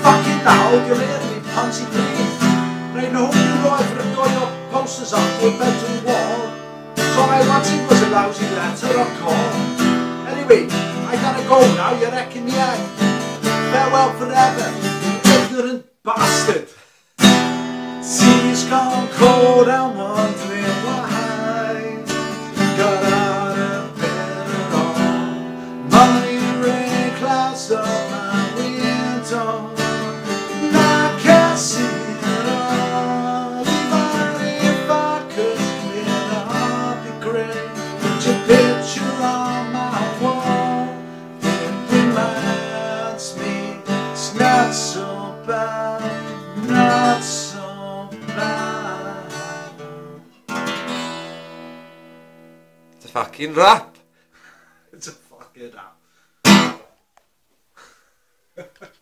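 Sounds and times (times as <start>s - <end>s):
acoustic guitar strumming: 0.0s - 16.6s, 17.2s - 54.3s, 56.4s - 57.0s.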